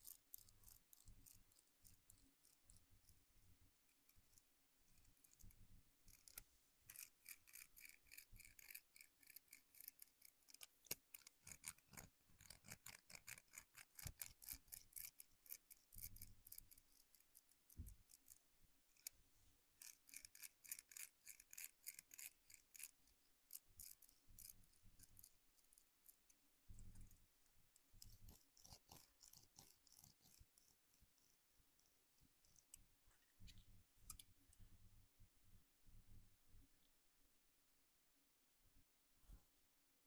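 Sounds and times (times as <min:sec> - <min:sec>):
light scratching strokes on skin: 0:28.0 - 0:34.2.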